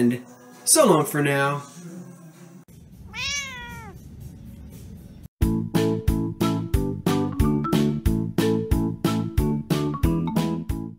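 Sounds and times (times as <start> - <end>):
cat meowing: 3.1 - 4.0.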